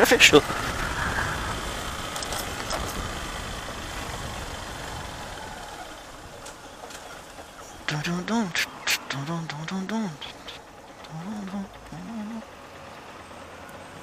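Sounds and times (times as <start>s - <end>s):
motorcycle engine running: 0.0s - 14.0s
wind and road noise: 0.0s - 14.0s
person speaking: 7.9s - 12.4s.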